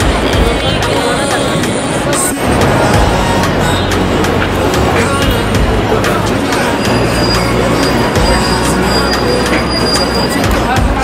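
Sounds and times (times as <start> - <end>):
subway train rumble: 0.0 - 11.0
high-pitched wheel squeal: 6.5 - 10.7.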